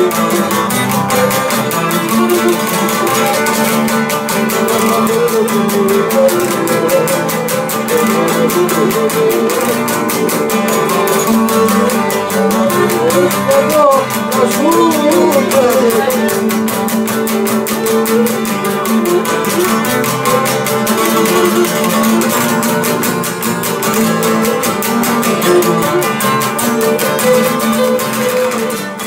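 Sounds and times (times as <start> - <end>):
bowed lyra melody: 0.0 - 29.0
lutes strumming fast rhythm: 0.0 - 29.0.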